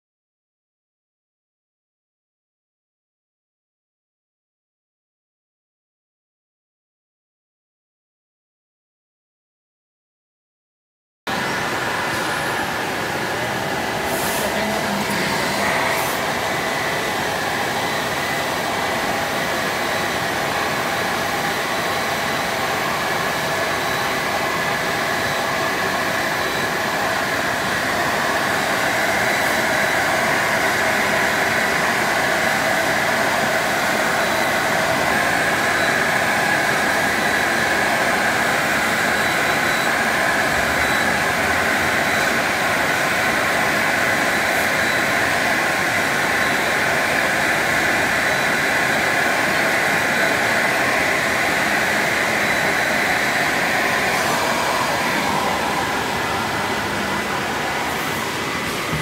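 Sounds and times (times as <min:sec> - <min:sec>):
milling machine rushing noise: 0:11.3 - 0:45.0, 0:50.1 - 0:59.0
faint high whine: 0:11.3 - 0:59.0.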